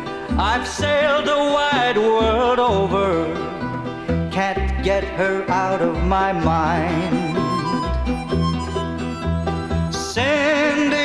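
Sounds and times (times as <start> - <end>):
orchestral backing: 6.6 - 11.0.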